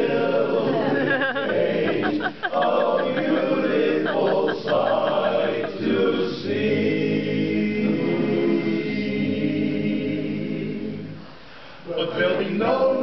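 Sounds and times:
male chorus singing a cappella: 0.0s - 11.2s, 11.8s - 13.0s.

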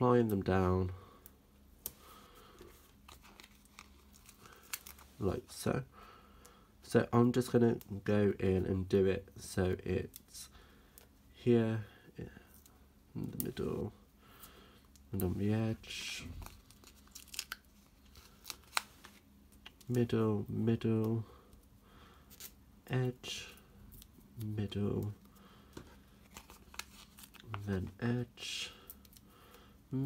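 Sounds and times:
foam dots peeling and pressing: 16.2s - 20.0s.

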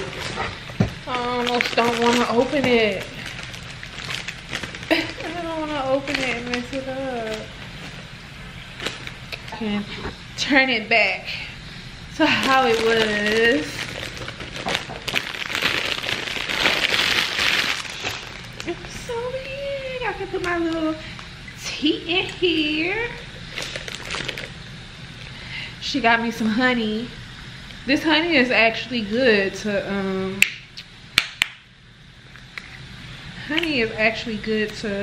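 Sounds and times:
cellophane crinkling: 0.0s - 8.0s, 8.6s - 9.7s, 12.2s - 21.3s, 23.1s - 24.6s.

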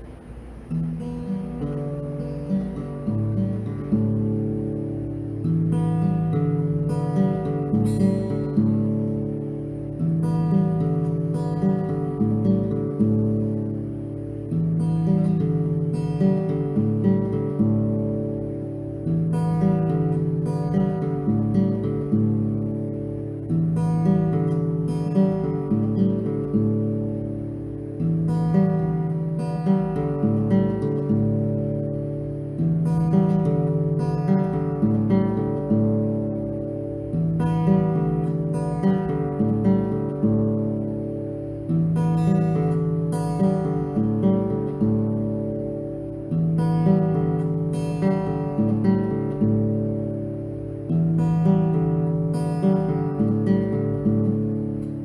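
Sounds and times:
fingerpicked acoustic guitar: 0.0s - 55.0s.

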